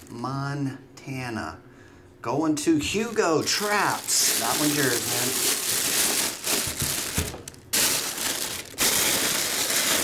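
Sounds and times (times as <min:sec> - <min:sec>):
plastic bag crinkling: 0:02.9 - 0:10.0.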